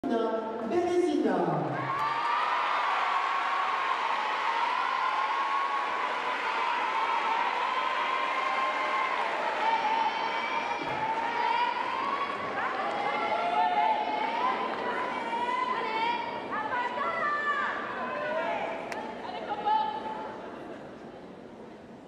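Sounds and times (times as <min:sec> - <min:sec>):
audience applauding and cheering: 0:01.8 - 0:15.6.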